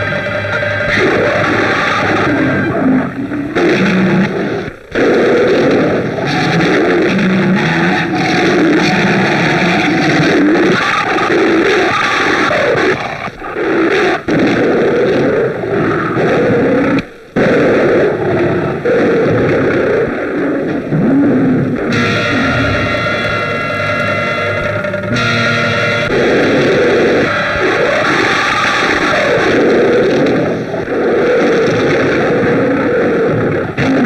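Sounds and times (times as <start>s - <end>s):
distorted guitar-like soundtrack: 0.0s - 34.0s
tiger growling and roaring: 21.0s - 23.7s.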